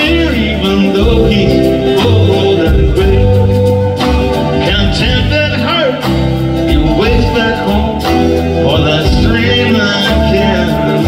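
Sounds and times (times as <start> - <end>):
live country band playing: 0.0 - 11.0
upright bass: 0.0 - 11.0.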